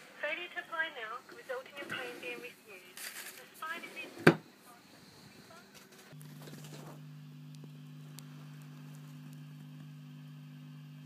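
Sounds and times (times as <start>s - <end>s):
guitar amp mains hum: 4.3s - 11.0s.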